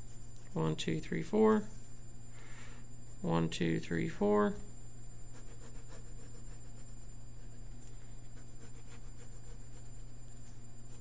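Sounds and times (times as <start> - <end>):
steady low hum: 0.0 - 11.0
pencil scratching on paper: 5.3 - 7.6, 8.3 - 10.0.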